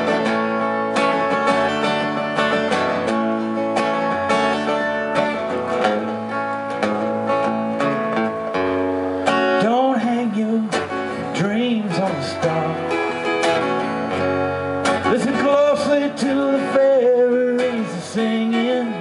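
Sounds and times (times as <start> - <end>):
acoustic guitar strumming: 0.0 - 19.0
person singing: 15.0 - 19.0.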